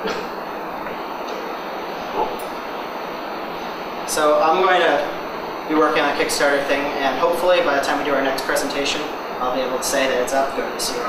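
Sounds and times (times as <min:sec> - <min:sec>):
hissing room noise: 0:00.0 - 0:11.0.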